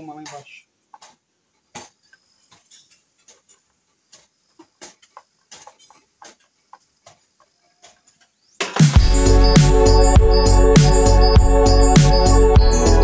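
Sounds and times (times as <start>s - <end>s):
faint clicks and taps of parts: 0.2s - 8.3s.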